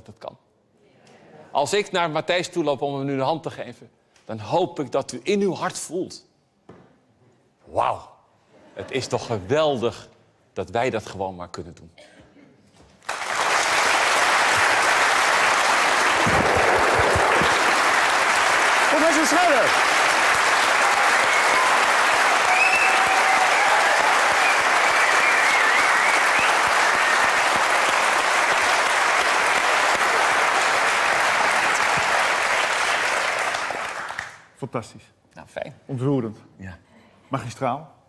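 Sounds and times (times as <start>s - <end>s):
audience applauding: 13.0s - 34.5s.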